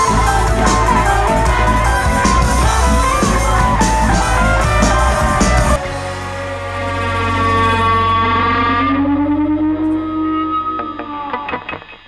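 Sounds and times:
electric guitar sliding note: 0.0 - 12.0.

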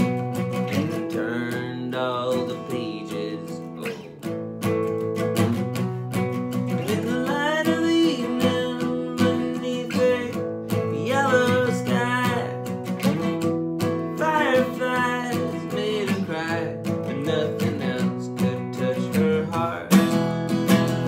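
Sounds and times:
man singing: 0.0 - 4.5, 6.4 - 21.0
acoustic guitar strumming: 0.0 - 21.0.

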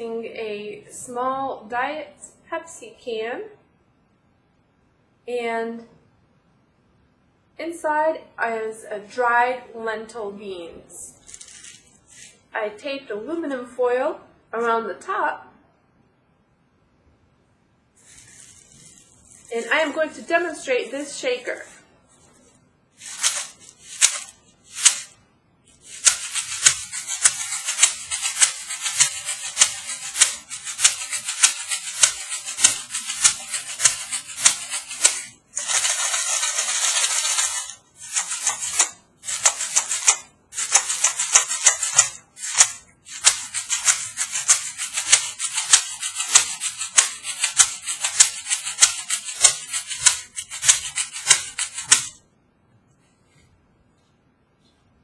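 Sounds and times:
lentils rattling in a can: 11.2 - 12.4, 18.0 - 20.2, 23.0 - 52.2.

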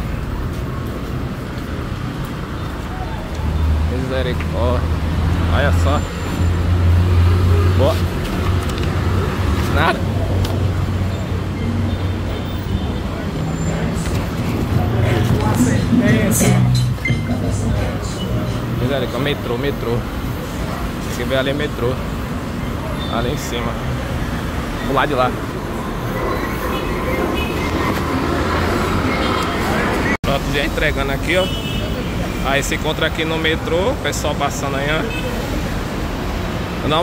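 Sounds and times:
road traffic hum: 0.0 - 37.0
metro train rumbling past: 13.0 - 19.1, 24.3 - 30.1.

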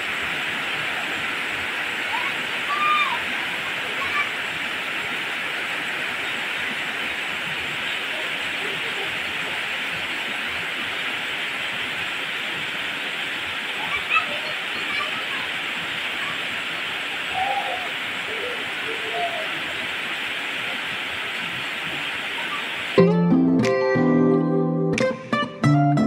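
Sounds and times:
heavy rain on foliage: 0.0 - 23.0.

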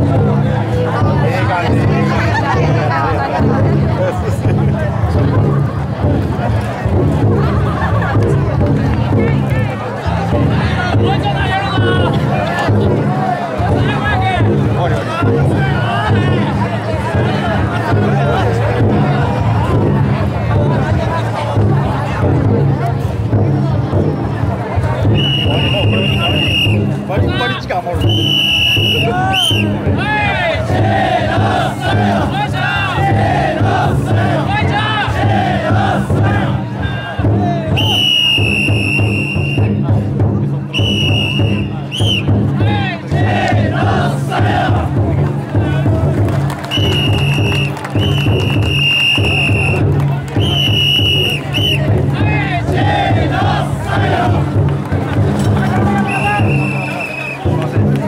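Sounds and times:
big drum beaten steadily: 0.0 - 58.0
shrill whistle blasts: 25.2 - 26.8, 28.0 - 29.7, 37.8 - 39.8, 40.7 - 42.3, 46.7 - 49.8, 50.4 - 51.8, 56.1 - 57.4
people shouting chants: 28.7 - 38.5, 42.6 - 46.0, 50.4 - 54.6.

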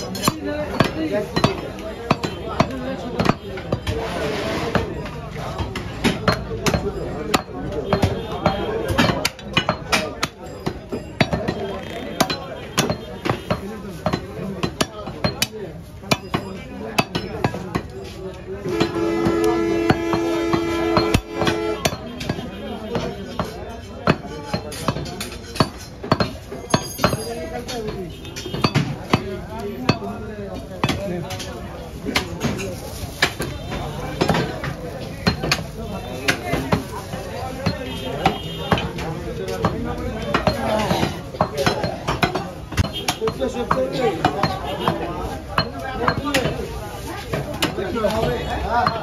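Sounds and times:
cleaver chopping meat on wood: 0.2 - 4.0, 5.6 - 17.9, 18.7 - 27.2, 27.8 - 30.2, 30.8 - 31.4, 33.2 - 46.6.

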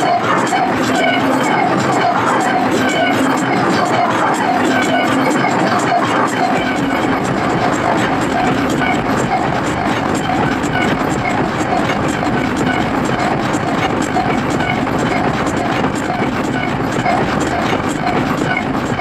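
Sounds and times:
industrial hardcore music: 0.0 - 19.0.

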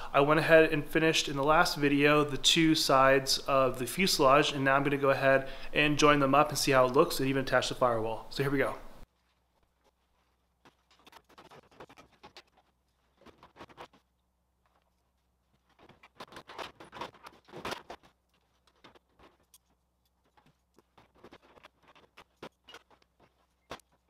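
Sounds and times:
sheet metal rattling and scraping: 15.6 - 24.0.

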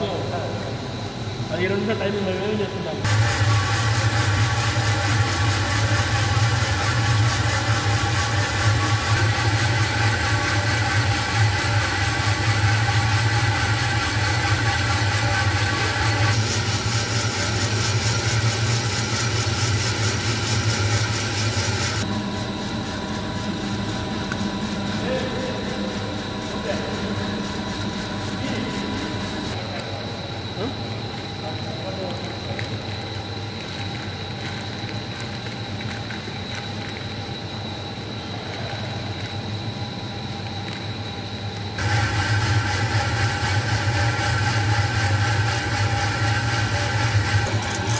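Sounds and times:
coffee roaster humming: 0.0 - 47.9
rotating drum mechanical rush: 3.0 - 29.6, 41.8 - 47.9.

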